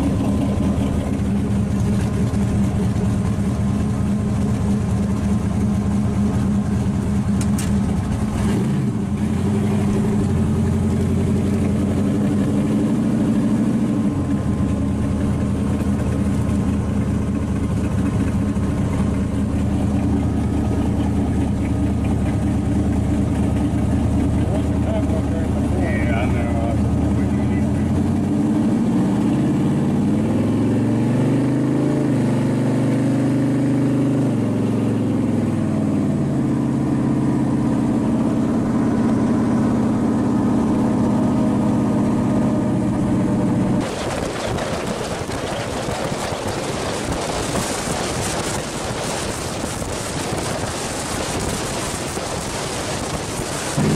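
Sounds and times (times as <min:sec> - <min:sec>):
supercharged car engine running: 0:00.0 - 0:53.9.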